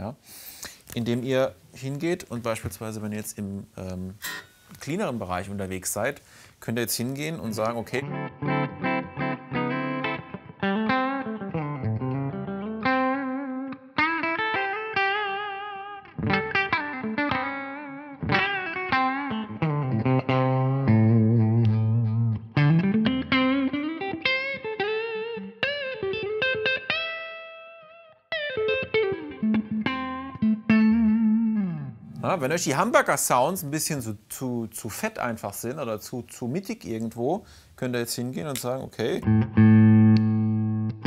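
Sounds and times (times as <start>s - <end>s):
clean electric guitar: 4.1s - 4.8s, 7.6s - 32.4s, 39.2s - 41.0s.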